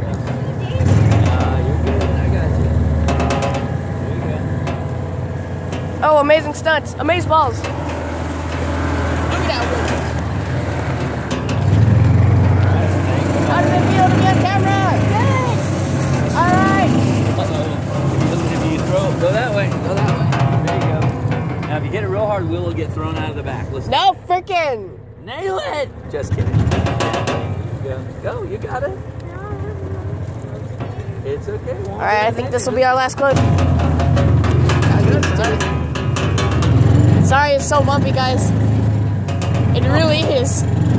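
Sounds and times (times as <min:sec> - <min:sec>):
utility vehicle engine droning: 0:00.0 - 0:40.9.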